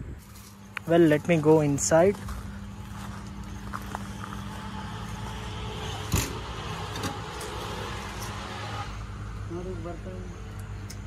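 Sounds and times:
substation electrical hum: 0.0s - 11.0s.

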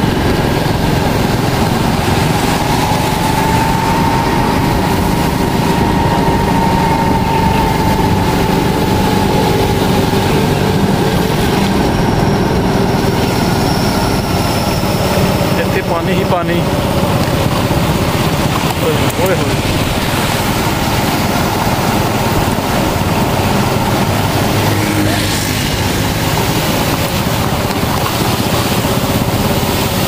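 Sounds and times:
faint engine whine: 0.0s - 30.0s
motorcycle engine running: 0.0s - 30.0s.

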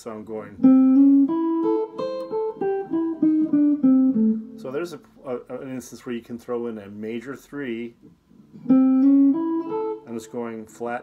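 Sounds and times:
electric guitar blues lick: 0.6s - 4.8s, 8.3s - 10.3s.

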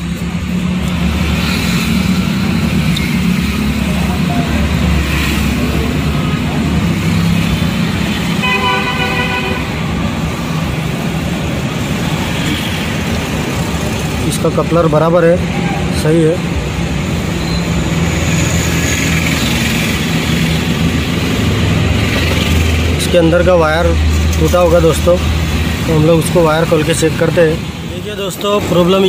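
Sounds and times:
road traffic: 0.0s - 29.0s
vehicle engine humming: 0.0s - 29.0s
car horn: 8.4s - 9.9s.

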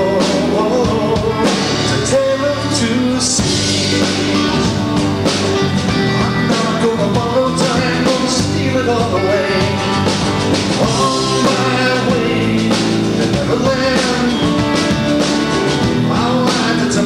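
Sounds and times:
man singing: 0.0s - 4.8s, 6.0s - 17.0s
folk-rock band playing: 0.0s - 17.0s.

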